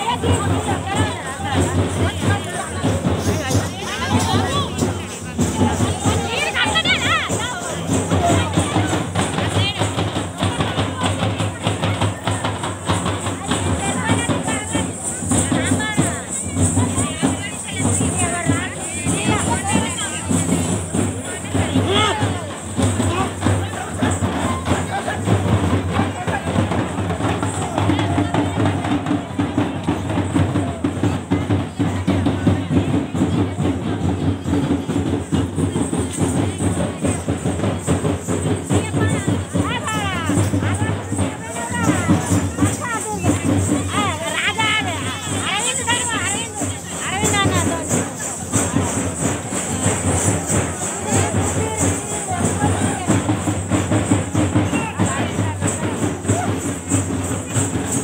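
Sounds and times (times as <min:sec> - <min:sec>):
drums in dance rhythm: 0:00.0 - 0:58.0.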